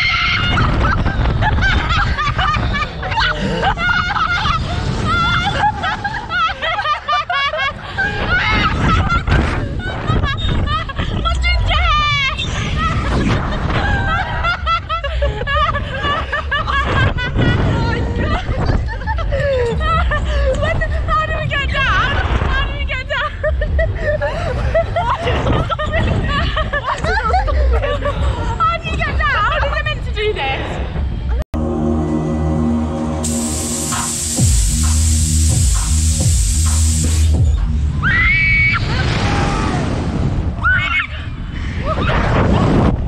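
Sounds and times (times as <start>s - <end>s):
wind noise rumble: 0.0s - 31.4s, 33.2s - 43.0s
young women giggling: 0.3s - 11.4s, 12.5s - 21.0s, 23.1s - 29.9s
deep bass pulse: 31.3s - 38.1s
electronic music with synth chords: 31.6s - 38.1s
smoke machine hissing: 33.2s - 37.4s.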